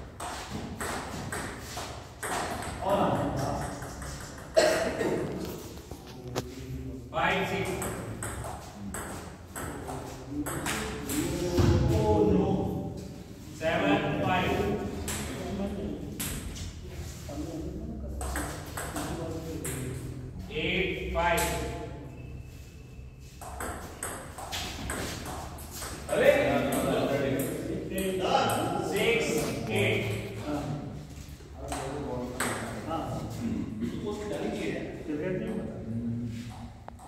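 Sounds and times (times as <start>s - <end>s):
people talking: 2.6s - 22.0s, 26.0s - 36.6s.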